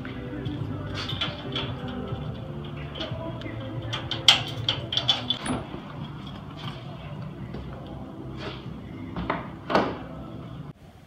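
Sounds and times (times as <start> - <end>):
iron gate opening: 0.0 - 7.4
key working a lock: 2.9 - 5.7.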